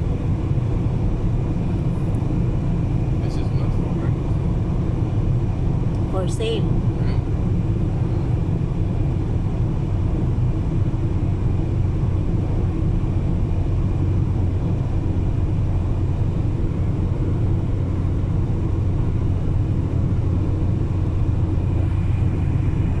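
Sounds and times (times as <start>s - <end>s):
car driving on highway: 0.0s - 23.0s.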